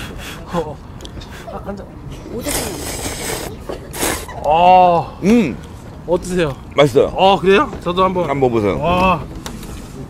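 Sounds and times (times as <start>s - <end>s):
man slurping noodles: 2.4s - 4.4s.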